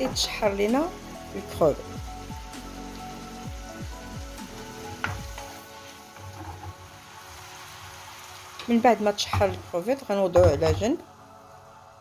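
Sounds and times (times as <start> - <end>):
background music: 0.0 - 12.0
shrimp sizzling in a frying pan: 0.0 - 12.0.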